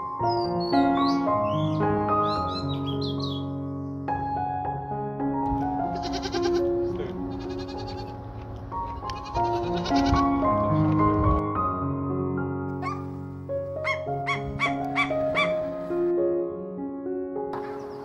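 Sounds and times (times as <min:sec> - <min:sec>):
goat bleating: 0:05.9 - 0:08.2, 0:09.0 - 0:10.4.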